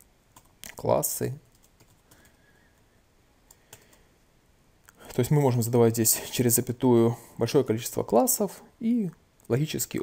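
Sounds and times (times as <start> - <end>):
faint keyboard typing: 0.3 - 4.1.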